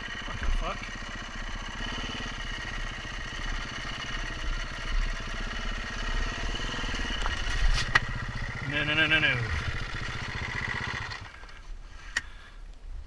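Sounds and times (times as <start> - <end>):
dirt bike engine running: 0.0 - 11.6.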